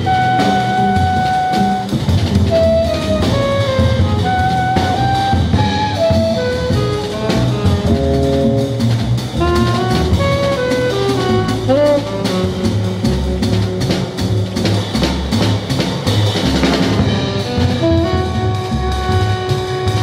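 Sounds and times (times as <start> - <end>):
tenor saxophone melody: 0.0 - 14.6, 17.0 - 20.0
drum kit with cymbals: 0.0 - 20.0
plucked double bass: 0.0 - 20.0.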